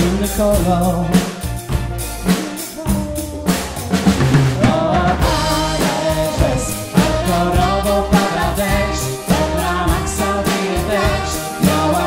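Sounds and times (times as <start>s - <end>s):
drum kit beat: 0.0s - 12.0s
sustained instrumental backing: 0.0s - 12.0s.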